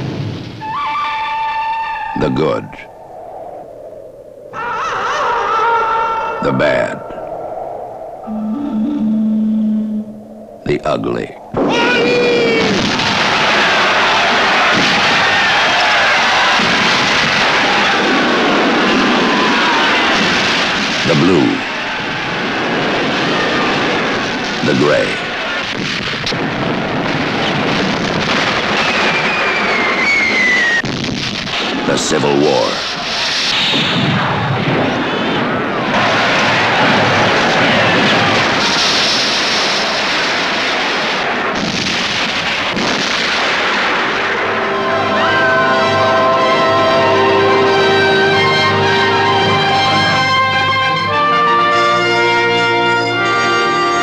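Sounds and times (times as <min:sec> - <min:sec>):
cannon fire roar: 0:00.0 - 0:01.0, 0:09.7 - 0:54.0
high falling whistle: 0:00.6 - 0:02.2, 0:07.1 - 0:10.7, 0:28.8 - 0:30.9, 0:44.2 - 0:51.1
low held tone: 0:06.4 - 0:11.6, 0:44.4 - 0:51.1
brass phrase with wavering pitch: 0:08.2 - 0:10.5, 0:44.2 - 0:54.0.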